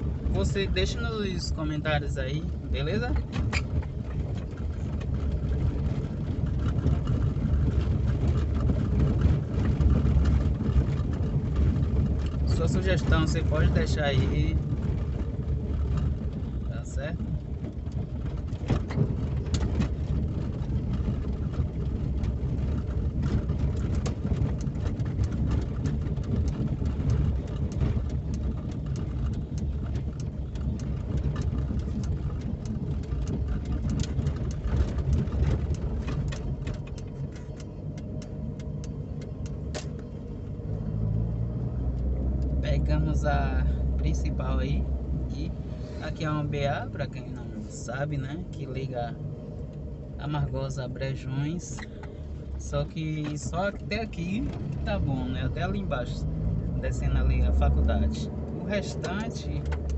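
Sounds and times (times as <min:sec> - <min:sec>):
car engine and road rumble: 0:00.0 - 0:59.9
tyres rattling over cobblestones: 0:00.0 - 0:59.9.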